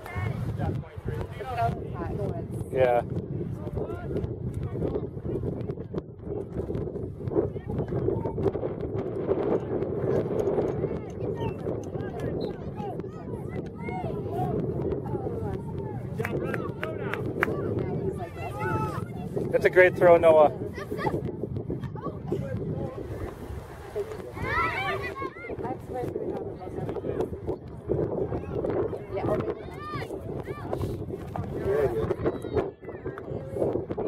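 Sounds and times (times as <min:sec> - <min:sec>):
wind rumble on microphone: 0:00.0 - 0:34.0.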